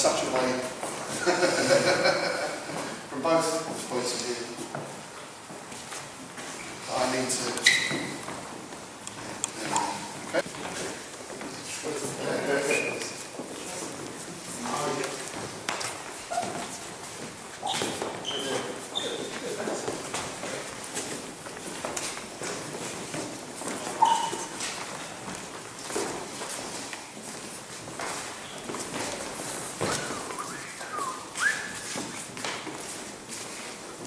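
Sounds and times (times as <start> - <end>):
footsteps and shuffling: 0.0 - 34.0
trainers squeaking on wooden floor: 3.5 - 34.0
person whistling a tune: 29.9 - 31.9.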